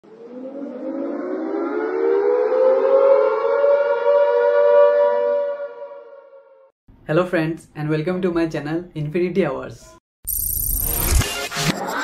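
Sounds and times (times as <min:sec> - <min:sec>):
siren-like wail: 0:00.0 - 0:06.7.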